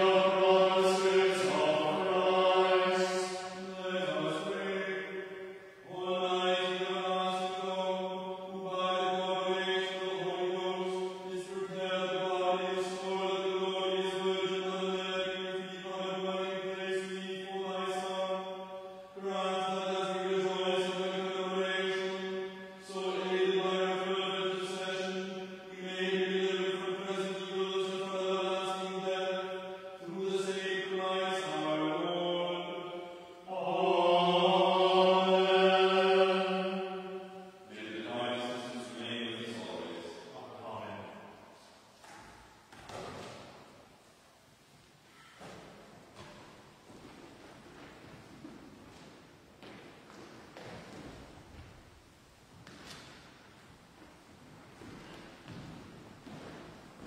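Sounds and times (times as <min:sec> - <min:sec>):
person chanting liturgical text: 0:00.0 - 0:43.9, 0:44.8 - 0:57.0.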